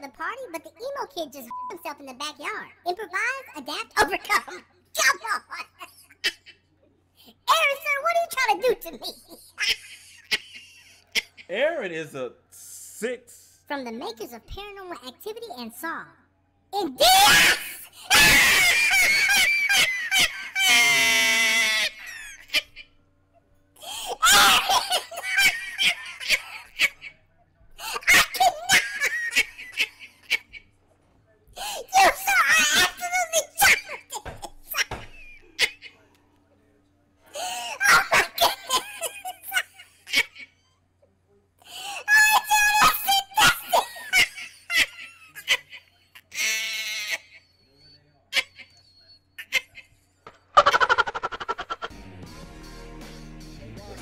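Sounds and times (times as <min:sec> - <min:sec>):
man laughing shrilly: 0:17.2 - 0:22.6, 0:24.0 - 0:27.0, 0:50.6 - 0:51.9.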